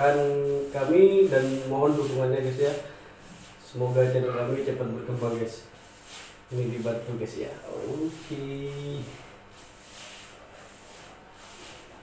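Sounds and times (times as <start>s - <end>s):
paintbrush swishing on wall: 0.0s - 12.0s.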